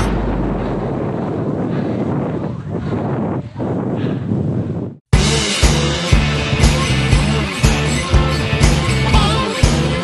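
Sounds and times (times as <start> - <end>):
wind rushing on microphone: 0.0 - 5.1.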